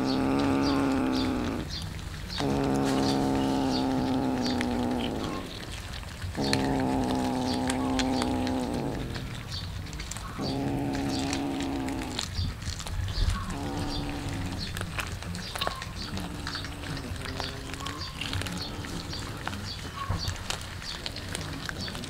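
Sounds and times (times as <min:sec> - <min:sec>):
cat growling: 0:00.0 - 0:22.0
cats chewing: 0:00.0 - 0:22.0.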